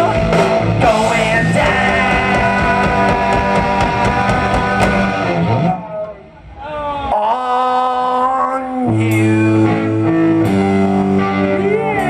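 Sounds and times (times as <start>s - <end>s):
punk rock band playing live: 0.0s - 6.6s, 8.9s - 12.0s.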